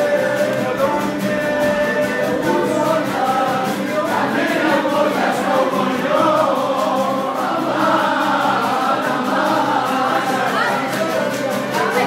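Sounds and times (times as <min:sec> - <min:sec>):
lute strummed beat: 0:00.0 - 0:12.0.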